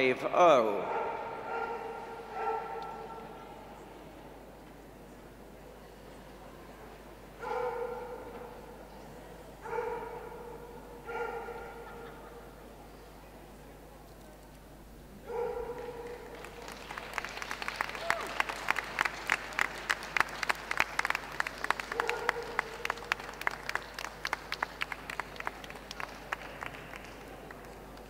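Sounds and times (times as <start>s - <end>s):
audience clapping: 15.6s - 28.0s
people cheering: 16.1s - 27.6s.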